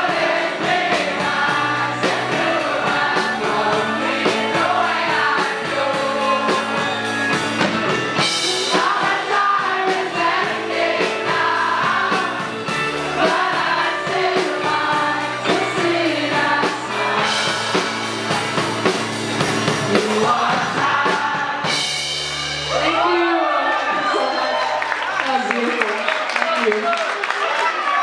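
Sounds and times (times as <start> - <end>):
crowd singing along: 0.0 - 22.2
rock band playing: 0.0 - 24.2.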